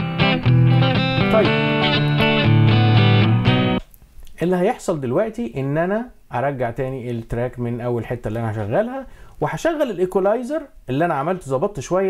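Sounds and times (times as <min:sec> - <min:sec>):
electric guitar notes and chords: 0:00.0 - 0:03.8.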